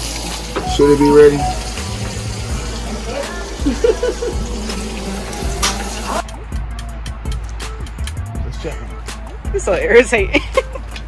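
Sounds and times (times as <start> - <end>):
meat sizzling in a skillet: 0.0 - 6.2
people laughing: 3.5 - 4.8, 10.2 - 11.0.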